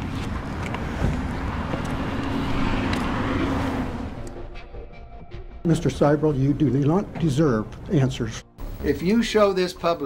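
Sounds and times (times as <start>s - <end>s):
rushing outdoor noise: 0.0s - 4.3s
vehicle engine humming: 0.0s - 4.8s.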